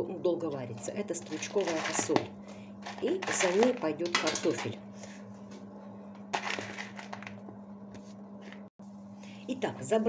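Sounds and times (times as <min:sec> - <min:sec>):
steady low hum: 0:00.0 - 0:10.0
rustling scrape: 0:01.2 - 0:02.2, 0:02.8 - 0:03.8, 0:06.4 - 0:07.3.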